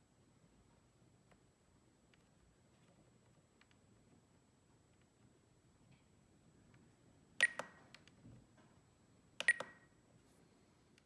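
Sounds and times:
button clicks: 0:07.4 - 0:08.0, 0:09.4 - 0:09.9.

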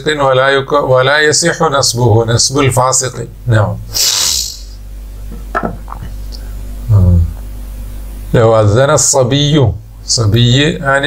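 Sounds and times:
low electrical hum: 0:00.0 - 0:11.0
short hiss: 0:03.9 - 0:04.8.

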